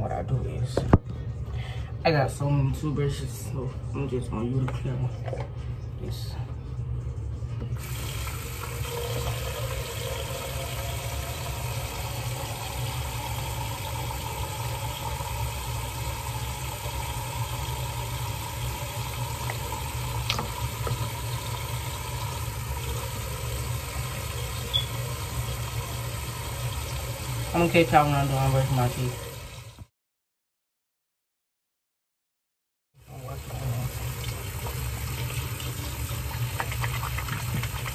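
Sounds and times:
tap running: 7.6s - 29.9s, 33.9s - 37.9s.

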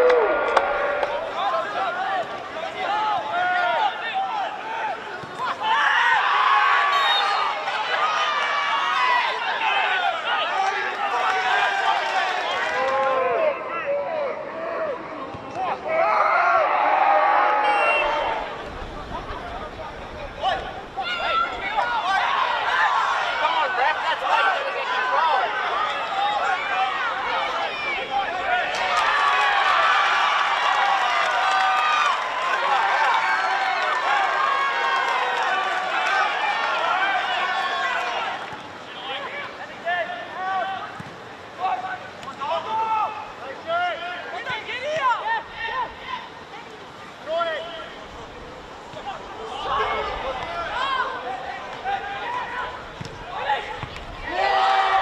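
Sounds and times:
voices shouting and calling: 0.0s - 31.0s
crowd noise: 0.0s - 55.0s.

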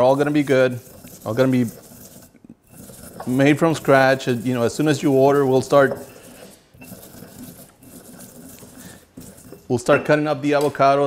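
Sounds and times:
pestle grinding in stone mortar: 0.0s - 10.1s.

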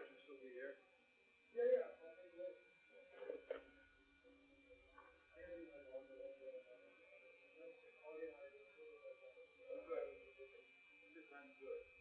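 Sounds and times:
faint indistinct speech: 0.0s - 12.0s.

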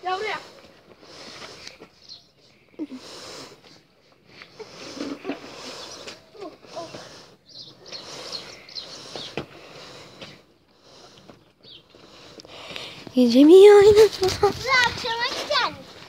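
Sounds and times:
distant children's voices: 5.2s - 7.3s.

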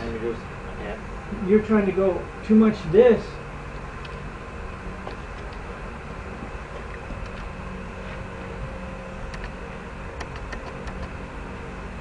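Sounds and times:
low hum: 0.0s - 12.0s
faint clicks: 10.2s - 11.1s.

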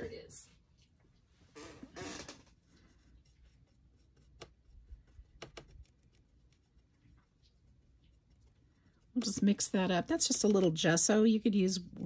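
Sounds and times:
paintbrush rustle: 2.5s - 11.4s.

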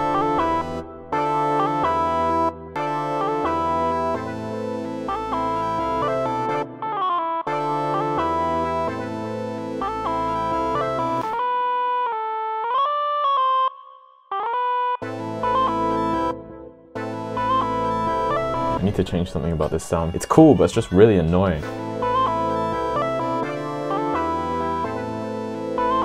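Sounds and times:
synth lead with pitch slides: 0.0s - 6.3s, 17.0s - 20.6s
bass: 0.0s - 6.7s, 7.6s - 11.4s, 15.1s - 26.0s
keyboard chords: 0.0s - 26.0s.

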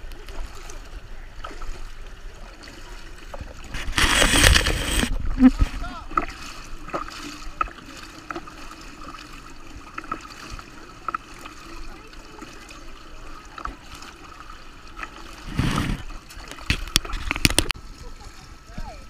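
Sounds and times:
swimmer's strokes splashing: 0.0s - 17.1s
pool water lapping and gurgling: 0.0s - 19.0s.

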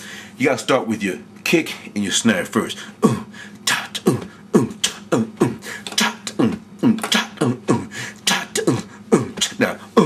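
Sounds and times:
man beatboxing: 2.6s - 10.0s.

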